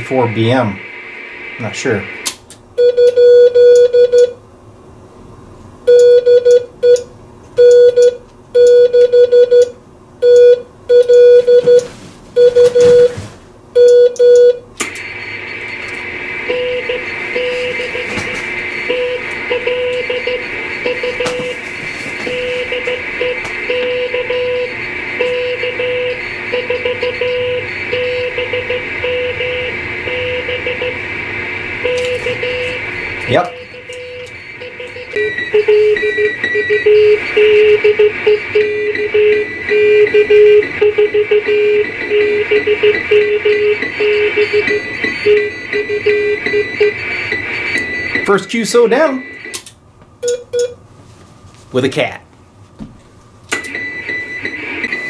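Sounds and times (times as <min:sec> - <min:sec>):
shortwave receiver hiss: 0:00.0 - 0:02.5, 0:14.8 - 0:23.7
morse code beeping tone: 0:02.8 - 0:04.4, 0:05.9 - 0:07.0, 0:07.6 - 0:13.2, 0:13.8 - 0:31.0, 0:31.8 - 0:49.6, 0:53.7 - 0:55.0.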